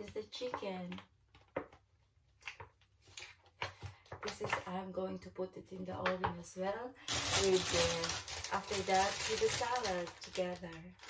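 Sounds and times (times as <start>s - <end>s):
plastic tray crinkling: 7.1s - 11.0s.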